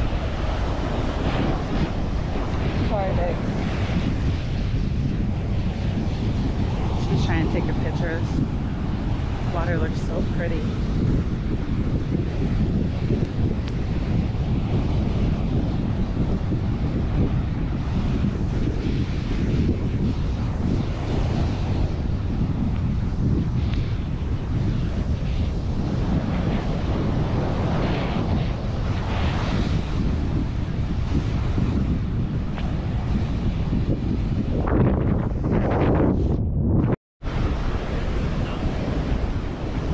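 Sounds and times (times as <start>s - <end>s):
ocean surf breaking: 0.0s - 12.2s, 37.2s - 39.9s
wind buffeting microphone: 0.0s - 39.9s.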